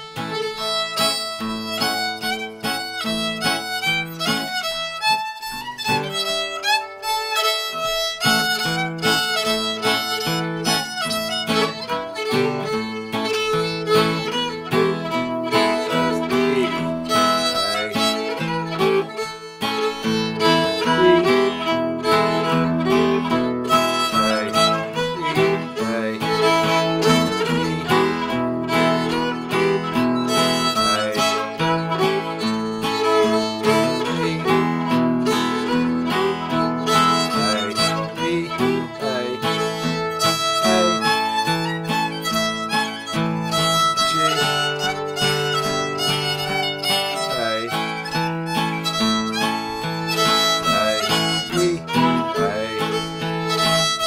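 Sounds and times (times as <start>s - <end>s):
acoustic guitar: 0.0s - 54.0s
fiddle: 0.0s - 54.0s.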